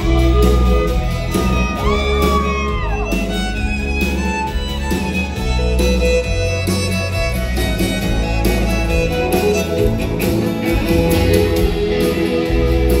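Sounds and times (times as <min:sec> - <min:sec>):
acoustic guitar and band backing: 0:00.0 - 0:13.0
fiddle solo: 0:00.0 - 0:13.0.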